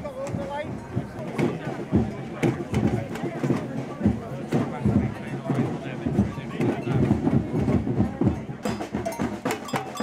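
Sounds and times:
crowd voices: 0:00.0 - 0:10.0
drums beating: 0:00.0 - 0:10.0
marching drums with sticks: 0:00.0 - 0:10.0.

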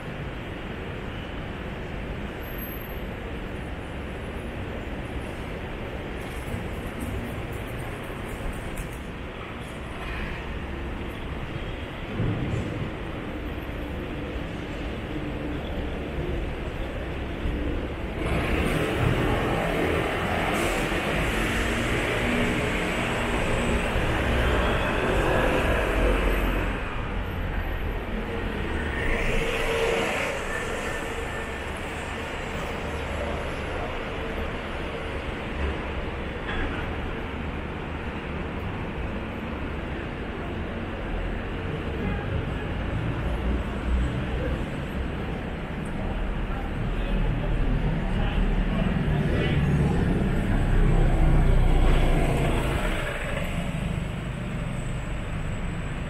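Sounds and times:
road vehicles passing: 0:00.0 - 0:56.0.

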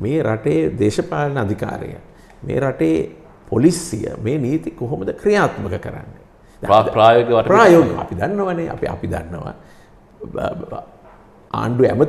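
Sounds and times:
man speaking: 0:00.0 - 0:09.6.

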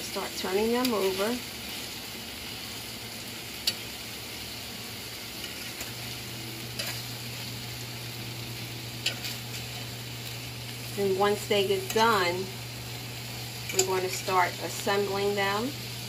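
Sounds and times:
burgers sizzling on a grill pan: 0:00.0 - 0:16.0
utensil clicking against pan: 0:03.6 - 0:03.8, 0:06.7 - 0:07.0, 0:13.6 - 0:14.3.

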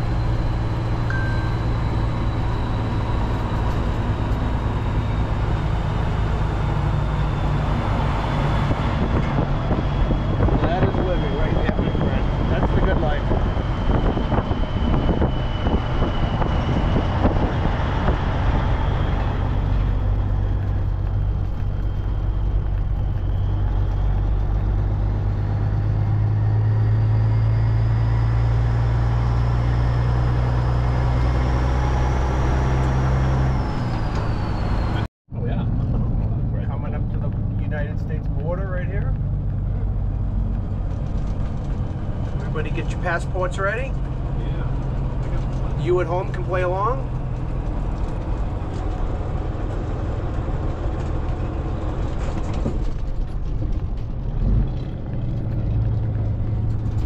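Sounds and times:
faint high whine: 0:00.0 - 0:07.6
truck diesel engine drone: 0:00.0 - 0:57.0.

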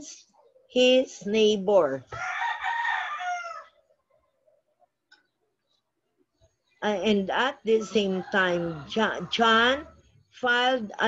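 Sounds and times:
rooster crowing: 0:02.1 - 0:03.9.

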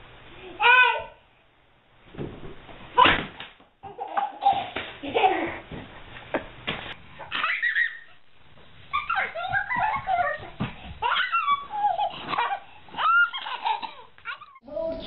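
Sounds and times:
baby laughing: 0:03.8 - 0:05.6, 0:07.2 - 0:08.2, 0:08.9 - 0:14.6.

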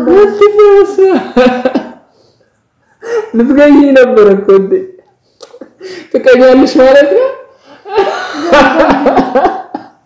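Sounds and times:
man coughing: 0:01.5 - 0:02.1
man laughing hard: 0:07.8 - 0:10.0.

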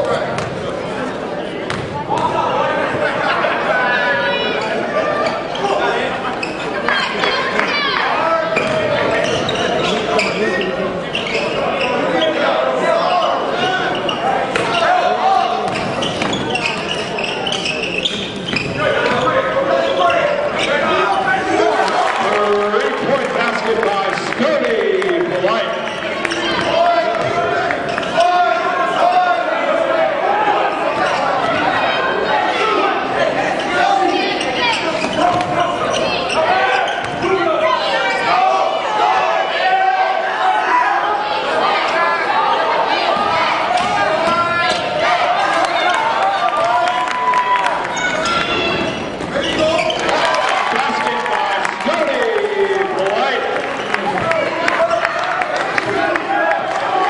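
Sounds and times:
crowd and players voices: 0:00.0 - 0:57.0.

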